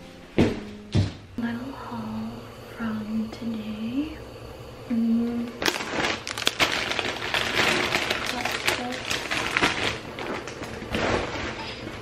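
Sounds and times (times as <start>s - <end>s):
packaging and bags rustling: 5.6s - 12.0s.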